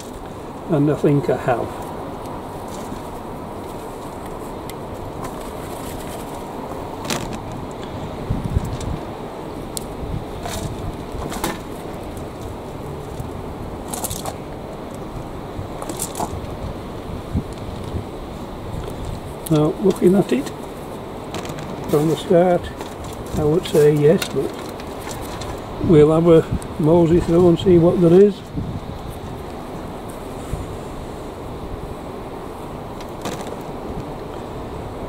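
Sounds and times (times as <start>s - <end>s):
hands rummaging through compost: 0.0s - 9.2s, 9.9s - 14.5s, 18.3s - 27.6s
outdoor background noise: 0.0s - 35.0s.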